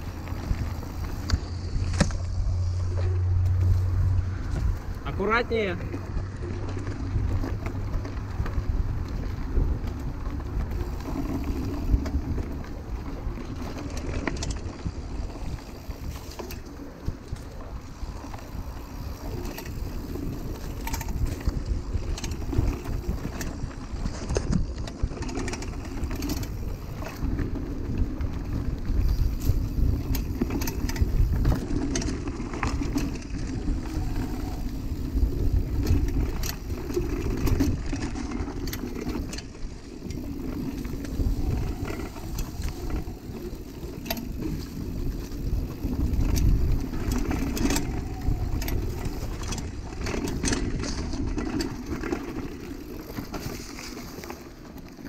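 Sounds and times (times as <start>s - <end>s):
bike tyres rolling on dirt: 0.0s - 55.0s
wind rumbling on microphone: 0.0s - 55.0s
chain and frame rattling: 29.0s - 53.9s.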